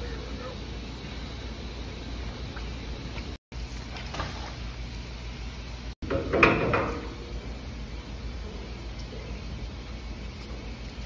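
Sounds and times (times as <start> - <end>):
steady low hum: 0.0 - 11.0
metal door shutting and clamping: 6.1 - 7.0.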